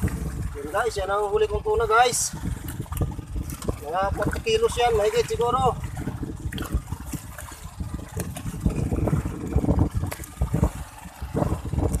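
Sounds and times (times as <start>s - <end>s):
water splashing and thumping: 0.0s - 12.0s.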